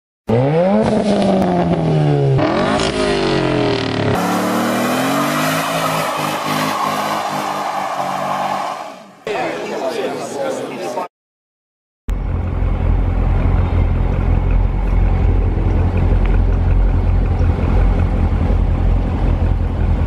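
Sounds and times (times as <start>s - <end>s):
race car engines revving: 0.3s - 9.2s, 12.2s - 20.0s.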